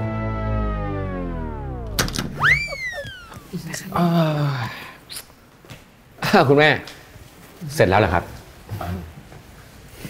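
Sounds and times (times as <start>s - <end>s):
descending whistle sound effect: 0.6s - 3.6s.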